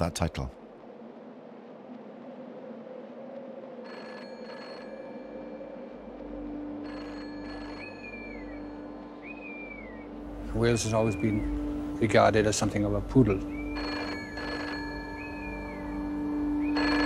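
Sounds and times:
telephone bell ringing: 3.9s - 5.6s, 6.8s - 8.1s, 13.8s - 15.3s, 16.8s - 17.0s
whistled calls: 7.5s - 12.3s, 13.2s - 17.0s.

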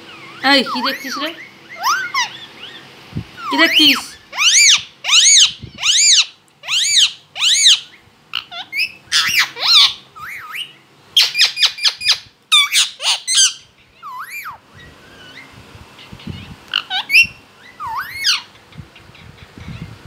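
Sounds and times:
parakeet squawking and chirping: 0.0s - 20.0s.

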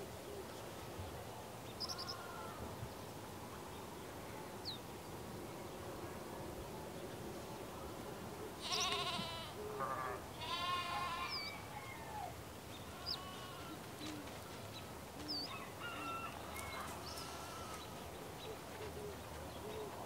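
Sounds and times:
small birds chirping: 1.6s - 2.3s, 8.6s - 9.2s, 12.7s - 15.6s
farm animal bleating: 8.6s - 11.6s, 12.8s - 14.9s, 16.8s - 18.0s.

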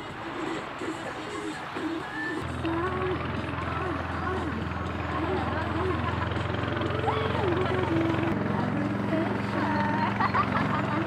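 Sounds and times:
motor droning: 2.3s - 11.0s
women talking and laughing: 3.4s - 11.0s.

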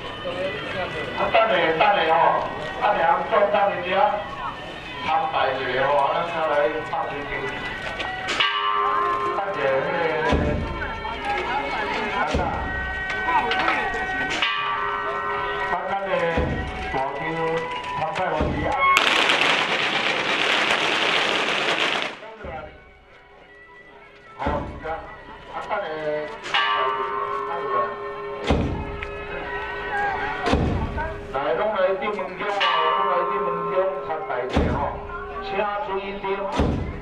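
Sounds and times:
crowd voices: 0.0s - 37.0s
low thumps: 28.4s - 29.0s.

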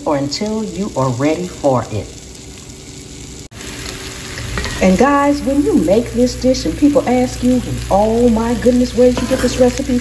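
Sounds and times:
food sizzling in a skillet: 0.0s - 10.0s.

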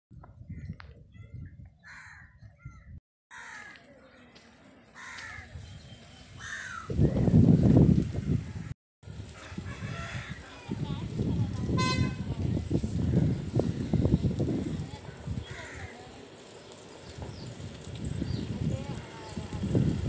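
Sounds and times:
crows cawing: 1.9s - 2.3s, 3.3s - 3.9s, 5.0s - 5.5s, 6.4s - 6.9s, 15.4s - 16.1s
outdoor background noise: 3.3s - 20.0s.

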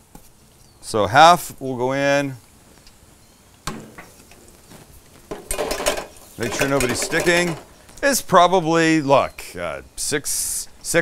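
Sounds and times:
metal clinks on fryer basket: 5.3s - 7.7s.

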